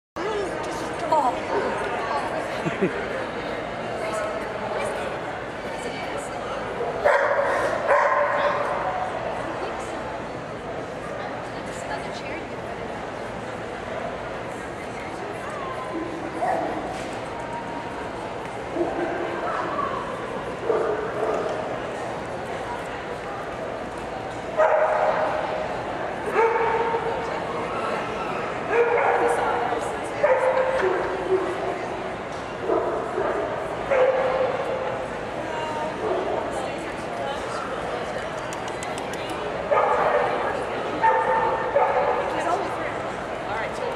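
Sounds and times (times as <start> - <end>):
crowd murmur in hall: 0.2 - 43.9.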